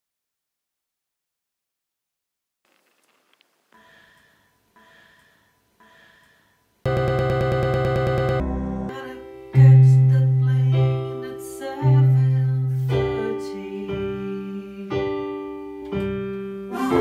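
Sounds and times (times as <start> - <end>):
deep bass notes: 6.9 - 9.0
electronic keyboard playing: 6.9 - 9.4.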